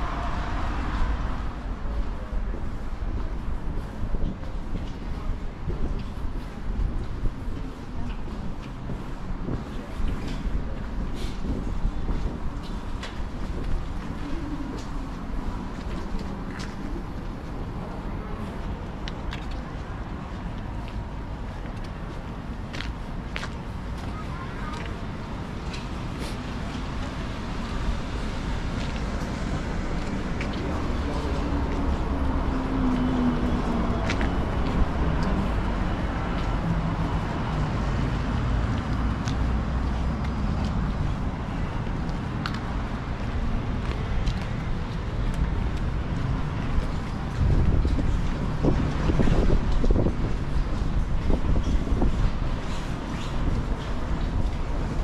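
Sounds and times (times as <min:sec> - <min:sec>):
road traffic passing: 0:00.0 - 0:55.0
footsteps on paving: 0:02.5 - 0:55.0.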